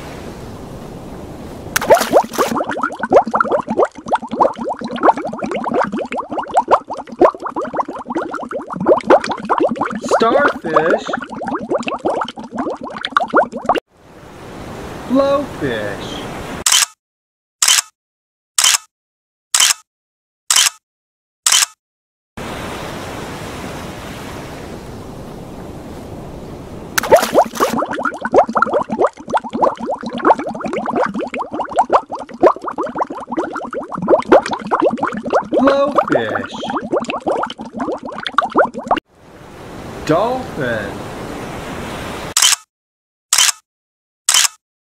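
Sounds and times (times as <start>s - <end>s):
water bubbling: 1.8s - 13.8s, 27.0s - 39.0s.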